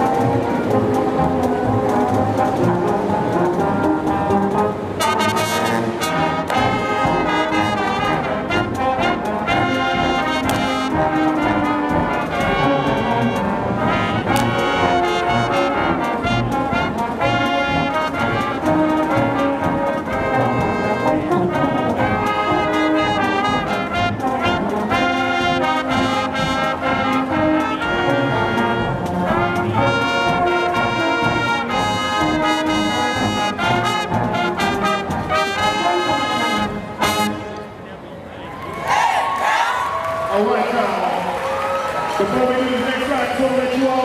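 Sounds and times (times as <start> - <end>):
marching band playing: 0.0 - 38.1.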